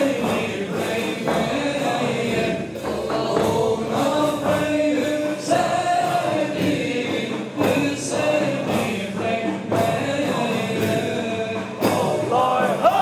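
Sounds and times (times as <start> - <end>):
cymbals: 0.0 - 13.0
frame drum strikes: 0.0 - 13.0
men chanting in unison: 0.0 - 13.0.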